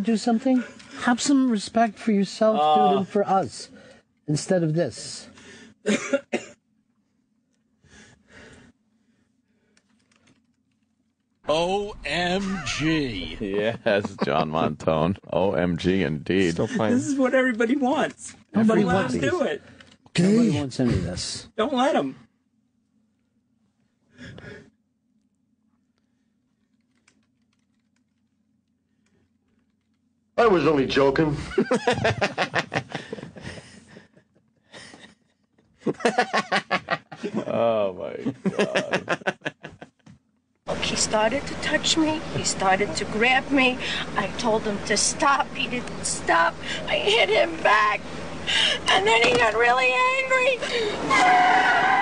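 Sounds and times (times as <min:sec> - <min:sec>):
faint steady hum: 0:00.0 - 0:52.0
man coughing: 0:05.8 - 0:06.6.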